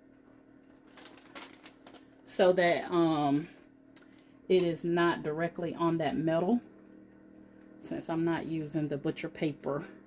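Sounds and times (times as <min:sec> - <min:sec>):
steady low hum: 0:00.0 - 0:10.0
paper rustling and clicking: 0:00.8 - 0:02.1.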